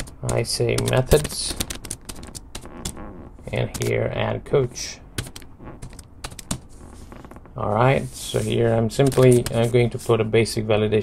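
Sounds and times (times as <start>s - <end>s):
computer keyboard typing: 0.0s - 4.0s, 5.2s - 6.7s.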